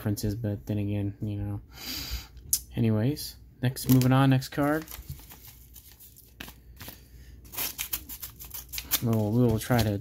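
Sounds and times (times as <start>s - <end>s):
paper mailer crinkling: 3.8s - 10.0s
paper rustling: 3.8s - 10.0s.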